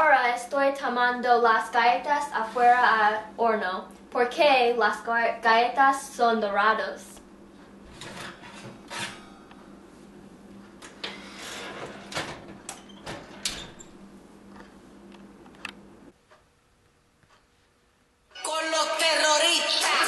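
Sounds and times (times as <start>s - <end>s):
oven low hum: 0.0s - 17.7s
baking sheet scraping and clinking: 7.8s - 9.5s, 10.9s - 12.5s.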